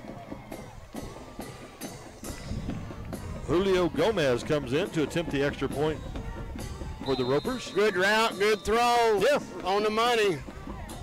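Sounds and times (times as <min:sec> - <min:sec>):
music with steady drum beat: 0:00.0 - 0:11.0.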